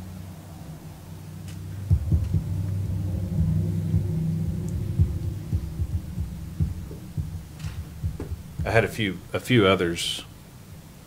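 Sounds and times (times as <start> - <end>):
low rumble: 0.0 - 9.4
steady low hum: 0.0 - 11.0
microphone handling thumps: 1.8 - 9.0.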